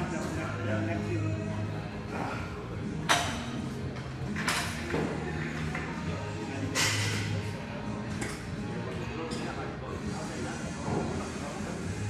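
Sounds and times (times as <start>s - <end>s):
gym background music: 0.0s - 12.0s.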